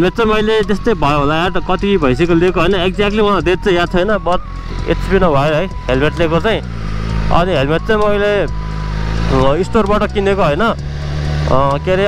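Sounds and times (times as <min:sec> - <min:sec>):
man speaking: 0:00.0 - 0:06.7, 0:07.3 - 0:08.6, 0:09.2 - 0:10.8, 0:11.5 - 0:12.0
motorcycle engine drone: 0:00.0 - 0:12.0.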